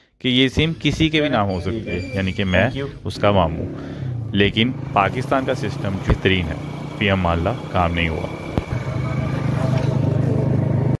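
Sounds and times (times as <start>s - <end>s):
motorcycle engine running: 3.5s - 11.0s.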